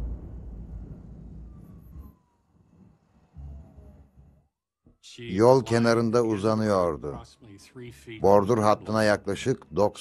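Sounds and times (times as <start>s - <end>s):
low rumble: 0.0s - 4.5s
faint distant siren: 0.0s - 10.0s.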